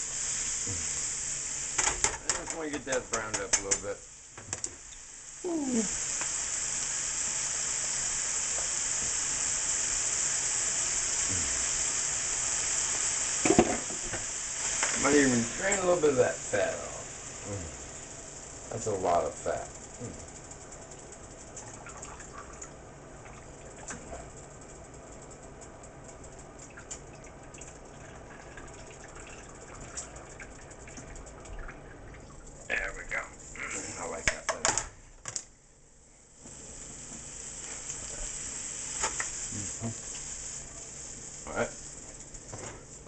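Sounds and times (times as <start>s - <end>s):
food sizzling in a skillet: 0.0s - 27.1s, 36.4s - 43.0s.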